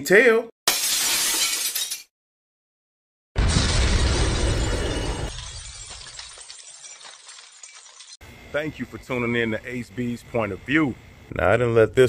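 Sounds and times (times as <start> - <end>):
glass shattering: 0.7 - 2.1, 3.4 - 8.2.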